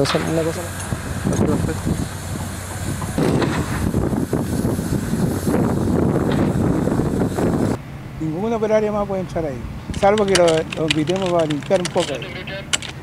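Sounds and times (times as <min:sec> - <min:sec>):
indistinct voices: 0:10.0 - 0:13.0.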